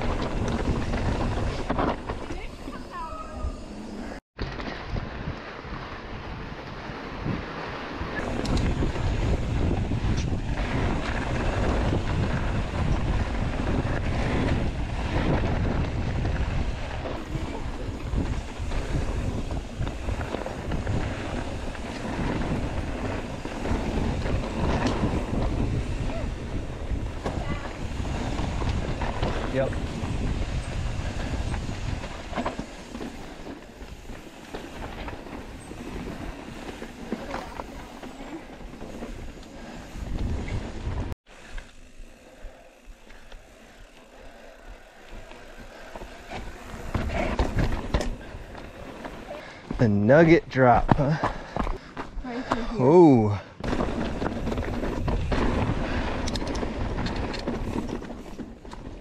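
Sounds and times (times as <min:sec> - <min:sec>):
wind buffeting microphone: 0:00.0 - 0:41.2, 0:44.6 - 0:59.0
bike tyres rumbling on rocky trail: 0:00.0 - 0:59.0.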